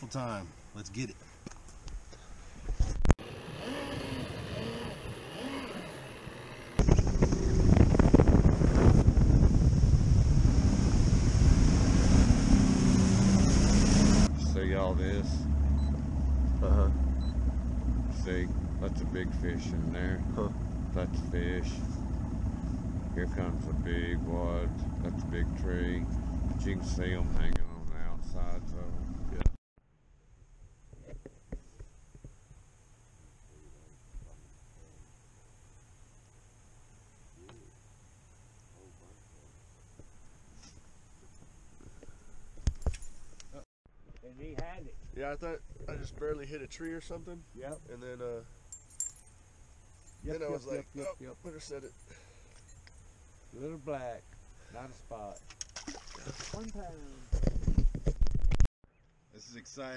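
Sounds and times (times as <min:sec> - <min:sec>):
outboard motor running: 0:03.2 - 0:27.6
wind buffeting microphone: 0:06.8 - 0:13.4
water rushing along hull: 0:09.6 - 0:14.3, 0:55.6 - 0:57.0
faint steady hiss: 0:30.4 - 0:42.3, 0:44.2 - 0:57.3.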